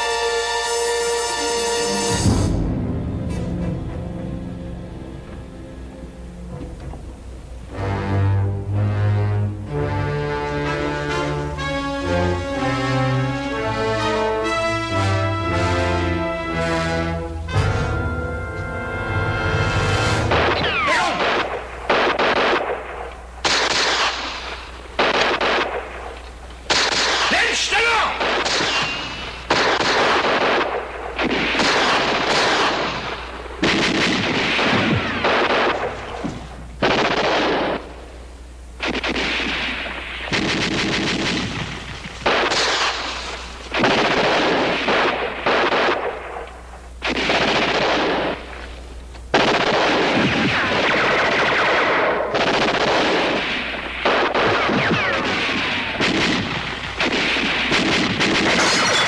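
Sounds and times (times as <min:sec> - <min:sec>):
low steady hum: 0:00.0 - 0:59.0
rapid gunfire bursts: 0:20.3 - 0:38.0, 0:38.8 - 0:46.4, 0:47.0 - 0:48.7, 0:49.3 - 0:59.0.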